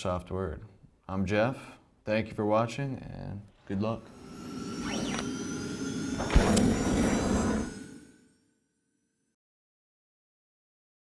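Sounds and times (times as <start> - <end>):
synthesized tones: 4.0 - 8.3
electronic whoosh: 4.0 - 8.4.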